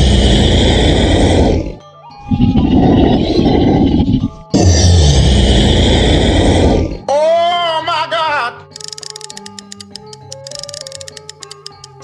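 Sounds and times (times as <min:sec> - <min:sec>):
monster growls: 0:00.0 - 0:07.1
quiet background music: 0:00.0 - 0:12.0.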